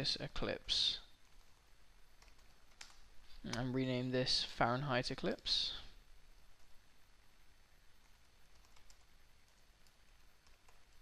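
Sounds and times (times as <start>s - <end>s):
computer keyboard typing: 2.2s - 3.0s, 8.0s - 11.0s.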